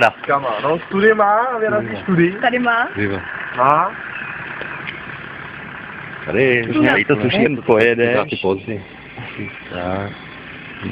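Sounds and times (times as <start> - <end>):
car engine running: 0.0 - 10.9.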